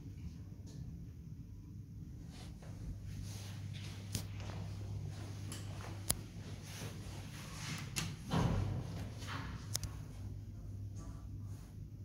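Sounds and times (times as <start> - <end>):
elevator humming: 2.1 - 11.7.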